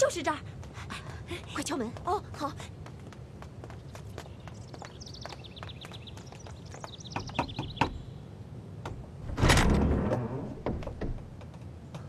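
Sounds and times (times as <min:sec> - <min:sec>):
footsteps on stone paving: 0:00.0 - 0:07.5, 0:11.2 - 0:12.0
birds chirping: 0:01.0 - 0:08.5
heavy clunk of wooden gate: 0:09.2 - 0:11.4.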